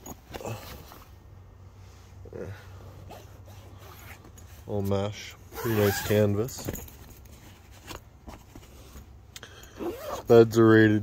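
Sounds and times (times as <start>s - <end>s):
zipper being unzipped: 5.6s - 6.2s, 9.8s - 10.3s.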